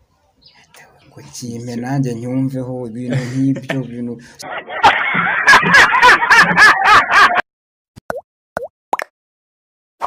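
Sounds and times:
man's voice: 0:01.1 - 0:04.4
cartoon pop sound effects: 0:08.0 - 0:09.1.

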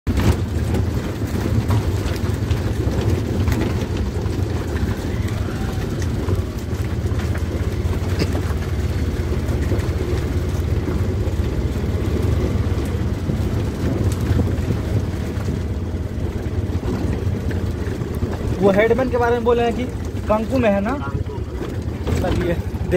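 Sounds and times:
vehicle rumble: 0:00.0 - 0:22.9
wind buffeting microphone: 0:00.1 - 0:22.9.

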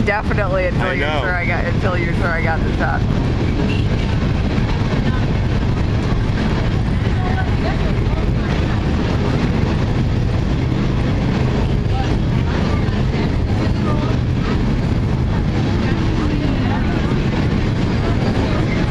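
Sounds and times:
freight train rumbling over bridge: 0:00.0 - 0:18.9.

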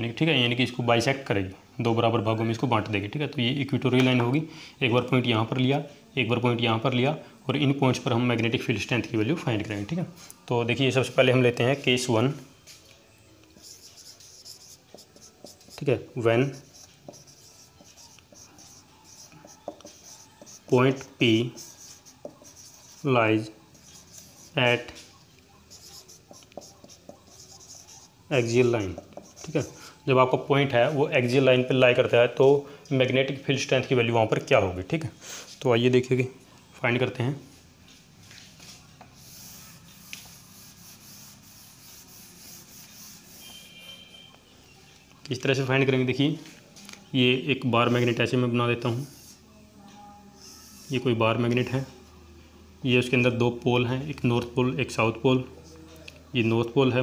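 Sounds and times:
marker pen writing on whiteboard: 0:13.5 - 0:29.8, 0:39.0 - 0:44.3, 0:48.8 - 0:49.4.

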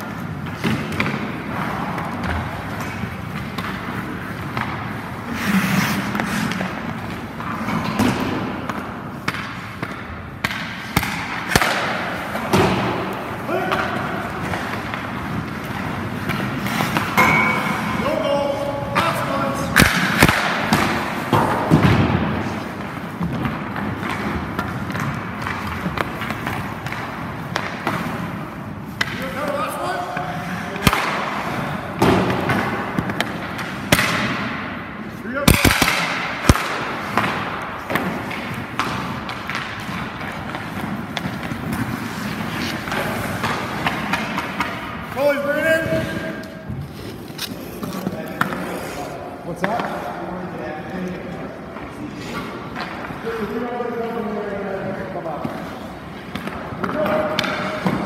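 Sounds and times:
pucks and sticks knocking: 0:00.0 - 0:50.3, 0:55.1 - 0:58.0.

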